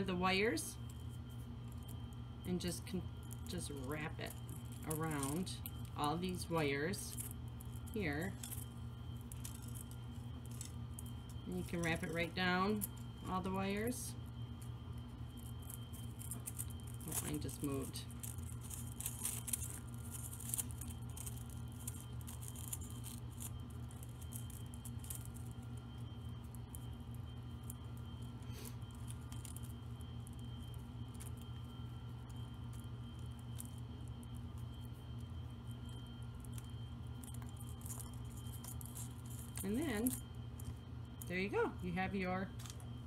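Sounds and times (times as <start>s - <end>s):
steady low hum: 0.0s - 43.0s
wire and ornaments rustling: 0.0s - 43.0s.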